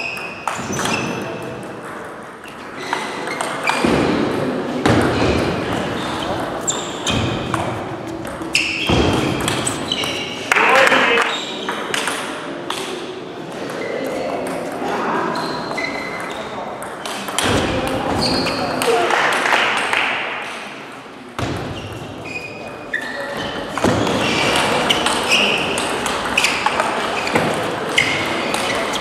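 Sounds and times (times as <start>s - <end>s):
crowd chatter in hall: 0.0s - 29.0s.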